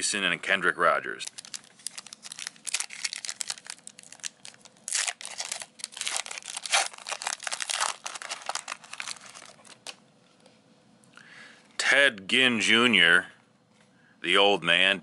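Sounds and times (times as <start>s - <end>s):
crinkling tears: 1.1s - 10.0s
foil wrapper tearing: 1.2s - 10.0s.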